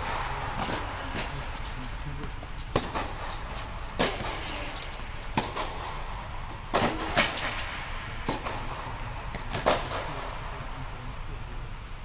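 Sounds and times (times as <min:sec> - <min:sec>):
tennis ball struck by racket: 0:00.0 - 0:01.4, 0:02.6 - 0:04.5, 0:05.2 - 0:10.3
steady low hum: 0:00.0 - 0:12.0
tennis ball bouncing on court: 0:00.5 - 0:04.5, 0:05.2 - 0:10.2.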